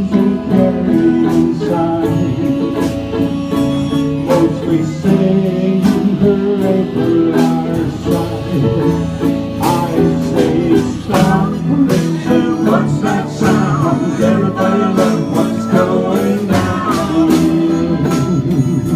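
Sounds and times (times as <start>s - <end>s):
guitars playing country tune: 0.0s - 18.9s.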